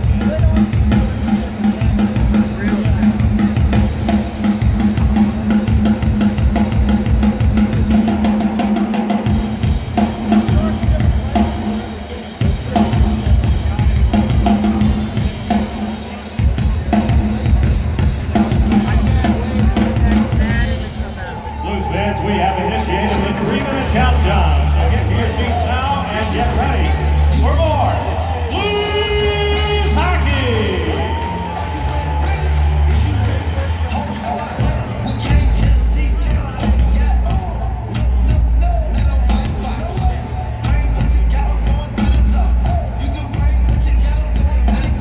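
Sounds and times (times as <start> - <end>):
drum kit playing: 0.0 - 21.2, 22.7 - 45.0.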